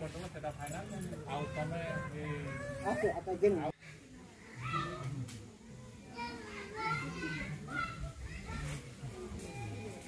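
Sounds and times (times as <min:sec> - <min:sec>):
people talking: 0:04.4 - 0:10.0.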